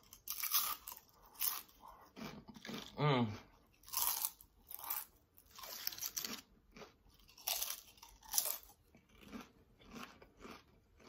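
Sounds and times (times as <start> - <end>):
chips being chewed: 0.0 - 11.0.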